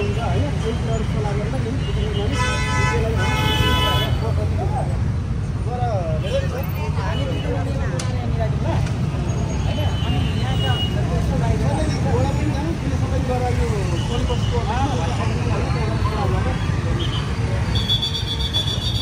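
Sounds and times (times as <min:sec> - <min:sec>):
voices murmuring: 0:00.0 - 0:18.3
street traffic rumble: 0:00.0 - 0:19.0.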